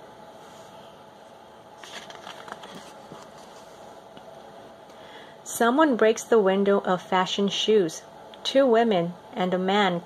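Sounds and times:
book page turning: 1.8 - 3.8.

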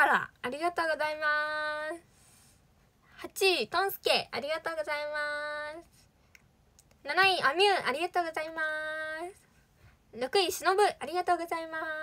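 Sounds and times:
faint clicks: 6.3 - 7.0
woman's sing-song voice: 7.4 - 9.4.

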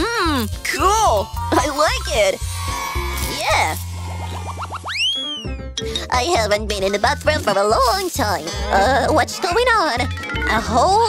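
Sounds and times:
background music: 0.0 - 11.0
cartoon upward pitch sweeps: 1.9 - 5.6.

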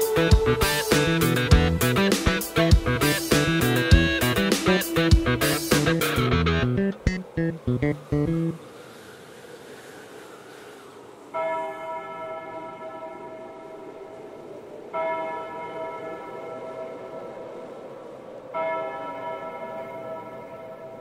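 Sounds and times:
church bell tolling: 11.3 - 17.4, 18.5 - 21.0.

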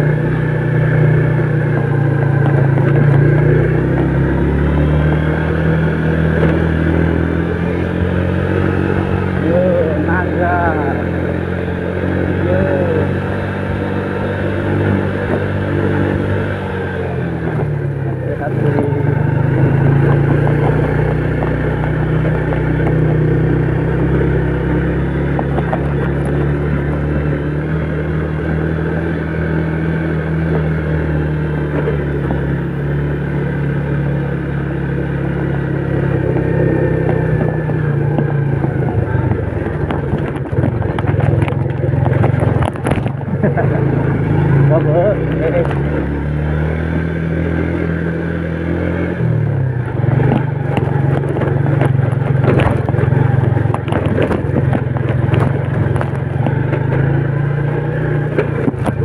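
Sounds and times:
motorcycle engine cruising: 0.0 - 59.0.

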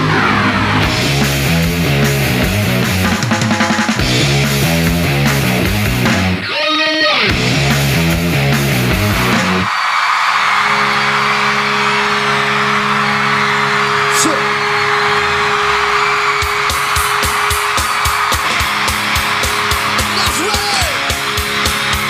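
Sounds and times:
crowd cheering and screaming: 0.0 - 1.6, 8.8 - 22.0
rock music: 0.0 - 22.0.

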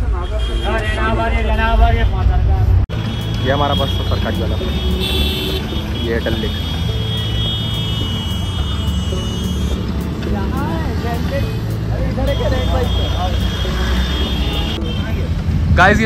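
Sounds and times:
rumble of passing vehicles: 0.0 - 16.0.

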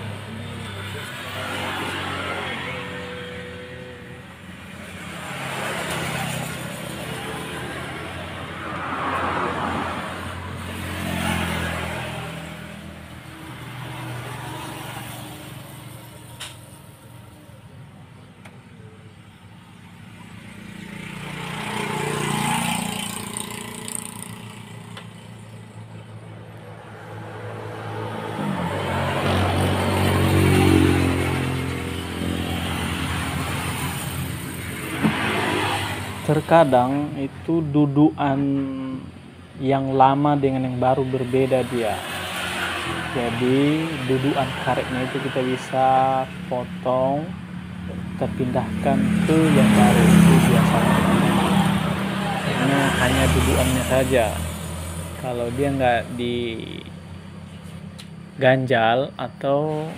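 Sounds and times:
vehicle engines running: 0.0 - 59.9.

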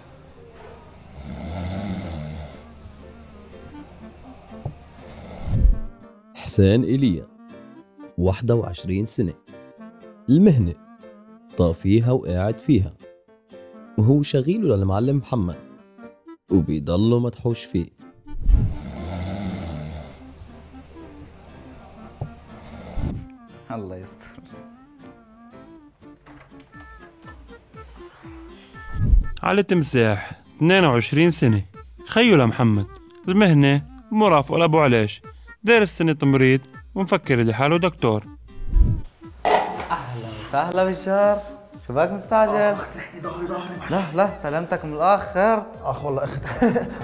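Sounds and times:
man snoring: 1.1 - 2.8, 5.0 - 5.9, 18.6 - 20.4, 22.2 - 23.3.

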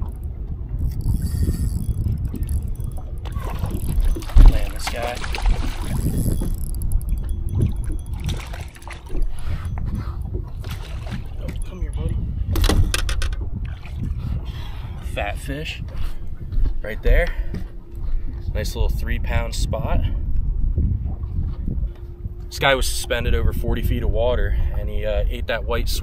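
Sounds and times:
wind buffeting microphone: 0.0 - 26.0
fishing reel clicks: 0.8 - 8.3.

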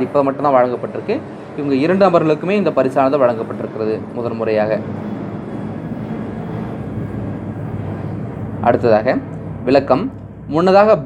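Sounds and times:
constant low hum: 0.0 - 11.0.

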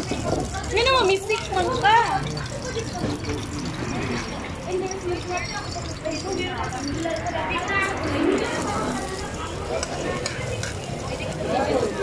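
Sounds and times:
onions sizzling in hot oil: 0.0 - 12.0
people chattering: 0.0 - 12.0.

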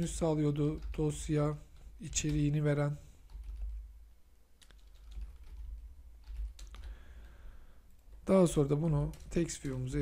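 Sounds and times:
keyboard keystrokes: 0.6 - 2.6, 3.3 - 3.8, 4.6 - 6.9.

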